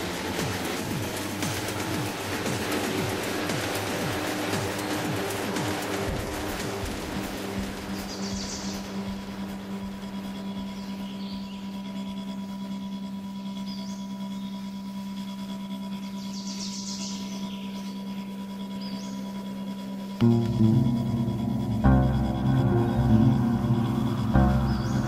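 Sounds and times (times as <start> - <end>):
low ambient music drone: 0.0 - 25.0
high bird chirps: 7.9 - 9.4.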